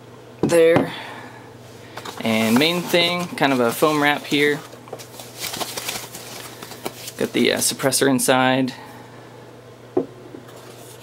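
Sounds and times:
foam wrap crackly rustling: 0:01.9 - 0:07.8.

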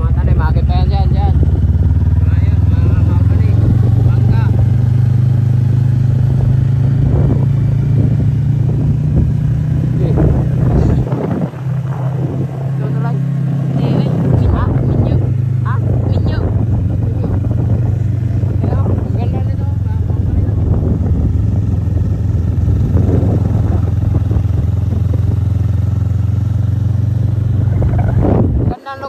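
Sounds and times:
motorcycle engine running: 0:00.0 - 0:29.0.

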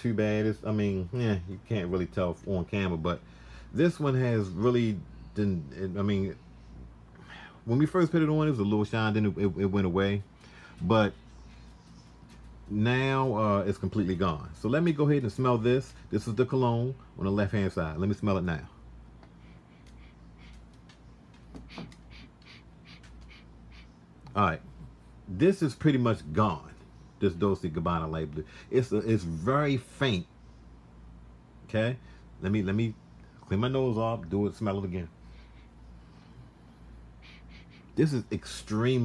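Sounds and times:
faint low hum: 0:00.0 - 0:39.0
man sniffing: 0:37.2 - 0:38.0.

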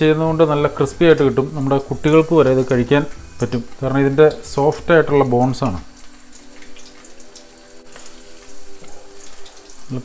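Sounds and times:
deep-frying sizzle with pops: 0:00.0 - 0:10.0.

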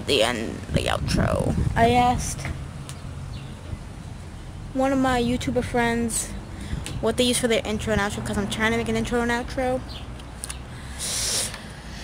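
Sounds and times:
low rumble: 0:00.0 - 0:06.8
person breathing in close: 0:06.5 - 0:06.9, 0:10.6 - 0:12.0.

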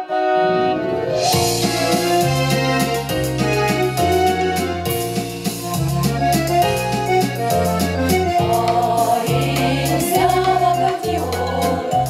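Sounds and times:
amplified accompaniment with bass line: 0:00.4 - 0:12.0
women's vocal ensemble singing: 0:08.3 - 0:12.0.

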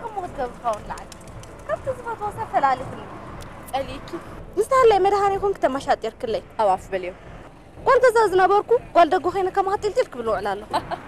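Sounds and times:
woman talking: 0:00.0 - 0:03.1, 0:03.7 - 0:07.2, 0:07.8 - 0:10.9.

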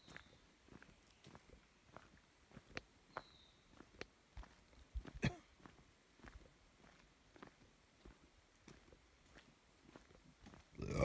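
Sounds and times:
footsteps on leafy dirt path: 0:00.0 - 0:11.0
low grunt: 0:10.8 - 0:11.0.

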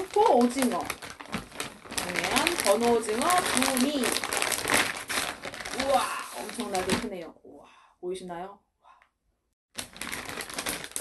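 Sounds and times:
plastic packaging crinkling: 0:00.0 - 0:07.2, 0:09.8 - 0:11.0.

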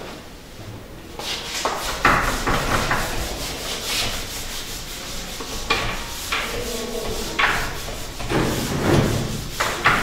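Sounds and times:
sponge eraser scrubbing whiteboard: 0:01.2 - 0:10.0.

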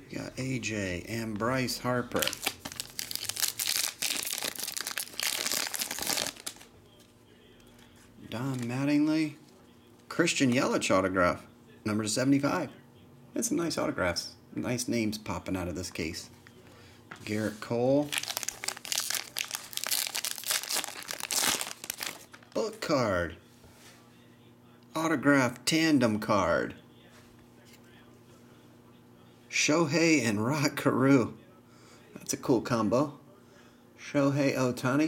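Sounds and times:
foil wrapper crinkling and tearing: 0:02.1 - 0:06.7, 0:18.0 - 0:22.6.

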